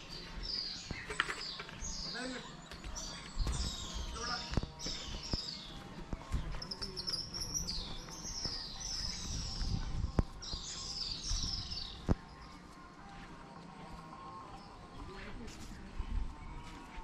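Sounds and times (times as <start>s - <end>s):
small birds chirping: 0.0s - 13.1s.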